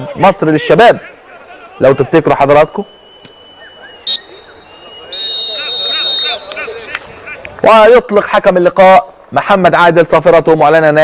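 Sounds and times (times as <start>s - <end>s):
referee's whistle blasts: 0.9s - 7.0s.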